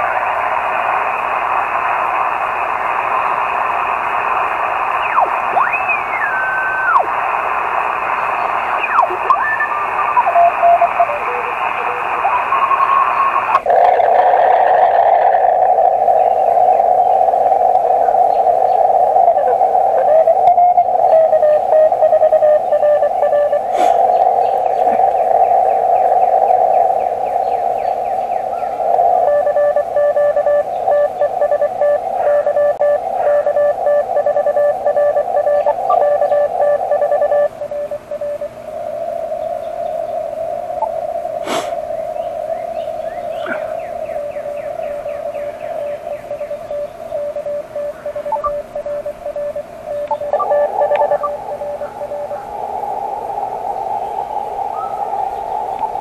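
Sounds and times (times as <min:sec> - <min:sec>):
radio band hiss: 0:00.0 - 0:56.0
morse code beeps: 0:08.9 - 0:12.8, 0:19.3 - 0:23.7, 0:29.2 - 0:38.5, 0:46.0 - 0:52.4.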